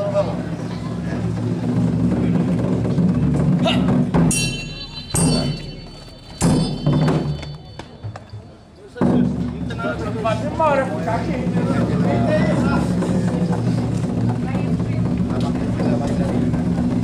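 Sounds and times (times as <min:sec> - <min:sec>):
steady drumming: 0:00.3 - 0:17.0.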